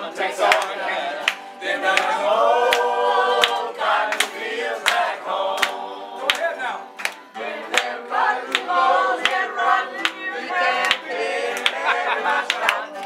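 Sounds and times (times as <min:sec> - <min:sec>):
group of people singing: 0:00.0 - 0:13.0.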